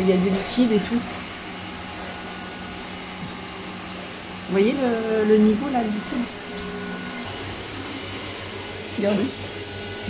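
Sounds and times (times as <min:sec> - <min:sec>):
robot vacuum whirring: 0:00.0 - 0:10.0.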